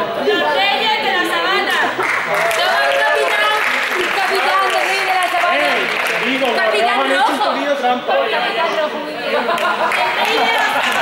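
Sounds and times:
voices talking and calling echoing: 0.0 - 11.0.

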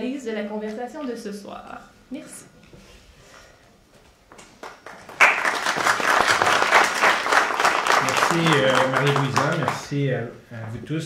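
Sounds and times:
audience applauding: 4.6 - 10.0
man speaking: 8.0 - 11.0.

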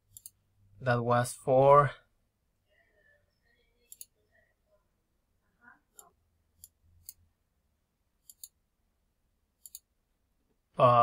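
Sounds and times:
faint computer mouse clicks: 9.6 - 9.9.

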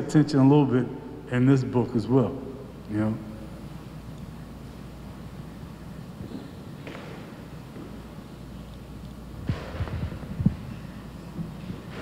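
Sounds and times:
steady low hum: 0.0 - 12.0
microphone handling thumps: 9.4 - 10.7.

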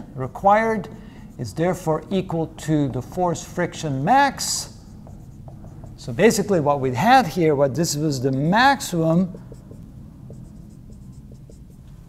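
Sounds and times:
low steady hum: 0.0 - 12.0
marker scratching on whiteboard: 1.3 - 6.6, 8.8 - 12.0.

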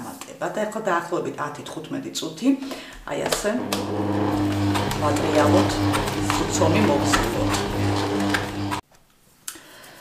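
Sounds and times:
stand mixer motor hum: 3.6 - 8.8.

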